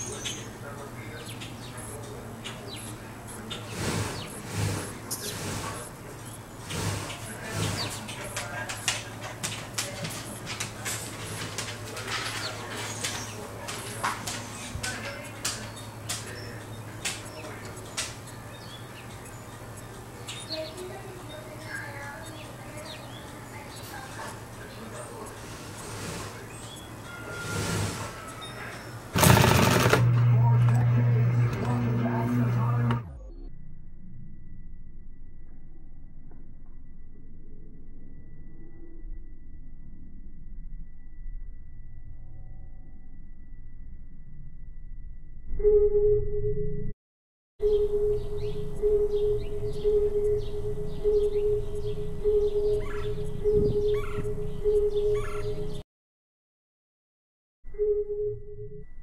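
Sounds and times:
small birds chirping: 0:00.0 - 0:10.8, 0:12.0 - 0:29.2, 0:47.6 - 0:55.8
steady low hum: 0:00.0 - 0:46.9, 0:47.6 - 0:55.8
sewing machine motor humming: 0:29.1 - 0:33.0
sewing machine stitching: 0:29.2 - 0:30.3.

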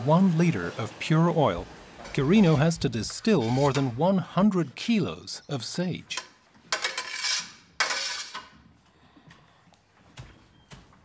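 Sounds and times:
tool scraping in metal tank: 0:02.0 - 0:04.1, 0:06.8 - 0:08.5.

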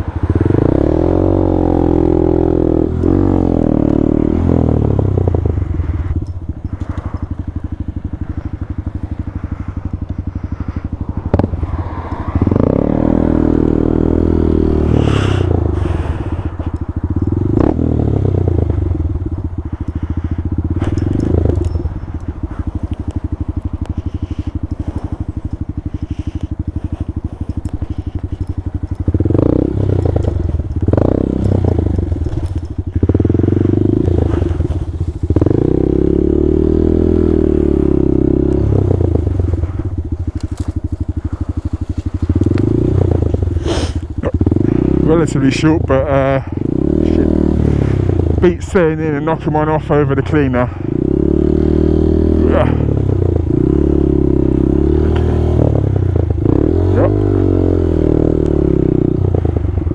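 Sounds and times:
motorbike engine revving: 0:00.0 - 0:59.9
bike knocking and clattering: 0:19.6 - 0:35.7.

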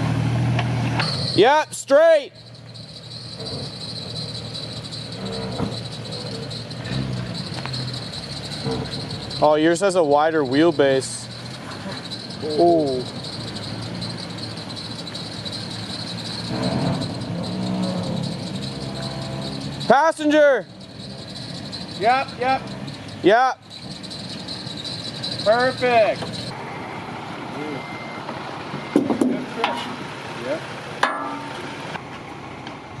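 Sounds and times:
truck engine at low revs: 0:00.0 - 0:33.0
sharp metallic clang: 0:01.0 - 0:01.6, 0:31.0 - 0:31.8
insects buzzing: 0:02.4 - 0:26.6.

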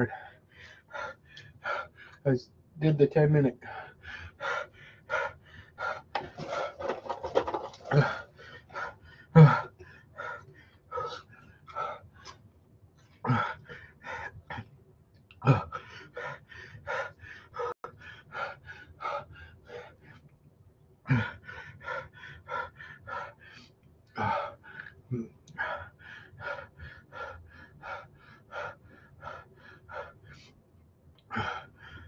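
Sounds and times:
man breathing hard in huffs: 0:00.0 - 0:02.2, 0:03.6 - 0:12.4, 0:13.1 - 0:14.7, 0:15.4 - 0:20.2, 0:21.0 - 0:30.6, 0:31.2 - 0:32.0.

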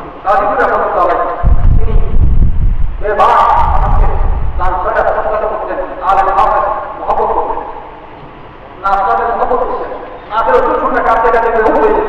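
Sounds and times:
man preaching over microphone: 0:00.0 - 0:02.3, 0:03.0 - 0:07.9, 0:08.8 - 0:12.0
loud low microphone rumble: 0:00.0 - 0:08.0.

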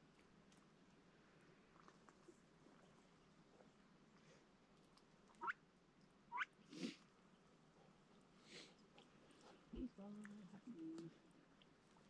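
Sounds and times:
soft rustles: 0:07.8 - 0:12.0.

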